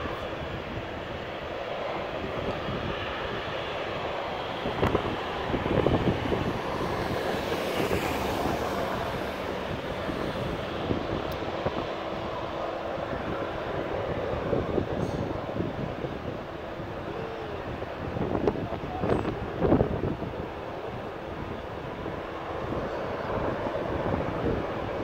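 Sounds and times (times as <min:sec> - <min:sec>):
distant jet rumble: 0:00.0 - 0:25.0
wind buffeting microphone: 0:00.0 - 0:25.0.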